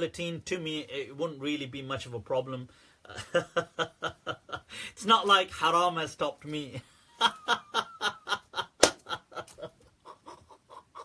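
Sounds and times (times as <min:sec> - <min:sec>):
man laughing hard: 0:03.1 - 0:04.7, 0:07.1 - 0:11.0
hand clap: 0:08.8 - 0:09.1.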